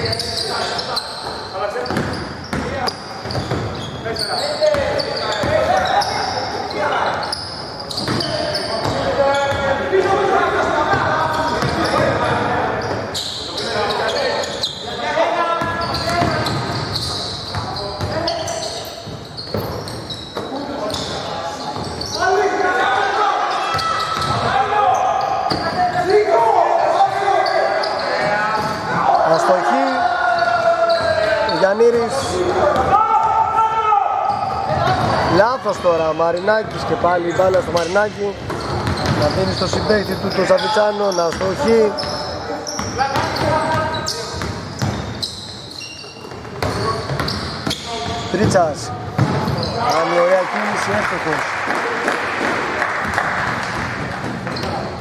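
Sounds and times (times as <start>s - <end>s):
voices calling out: 0.0s - 51.4s.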